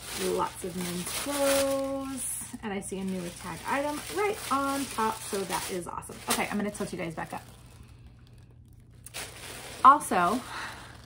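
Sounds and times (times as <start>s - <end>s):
woman speaking: 0.0s - 7.5s, 9.8s - 10.5s.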